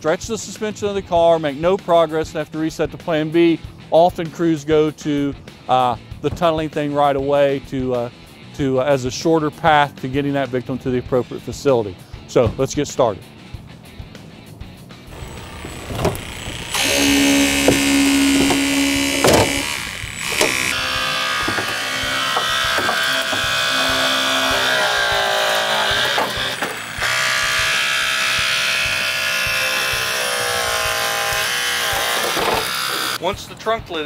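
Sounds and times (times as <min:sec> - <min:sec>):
hydraulic cutter pump whining: 0:15.1 - 0:33.2.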